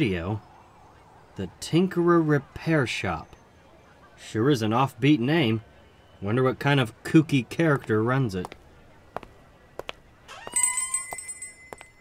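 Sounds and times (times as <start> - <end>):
door squeak: 10.3 - 11.0
shop door bell ringing: 10.3 - 12.0.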